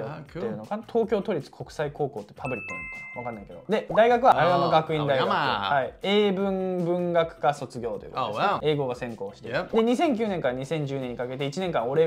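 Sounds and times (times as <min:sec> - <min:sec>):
two-note doorbell chime: 0:02.5 - 0:03.5.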